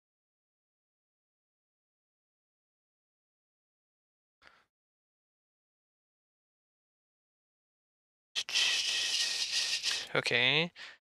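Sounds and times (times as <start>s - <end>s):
breath close to microphone: 4.4s - 4.7s, 8.4s - 10.1s, 10.8s - 11.0s
person speaking: 8.4s - 10.9s.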